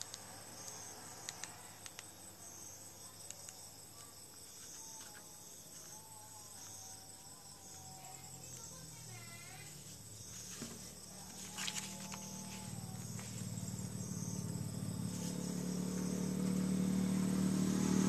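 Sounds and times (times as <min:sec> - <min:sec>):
light clicks: 0:00.0 - 0:02.2
crickets chirping: 0:00.0 - 0:18.0.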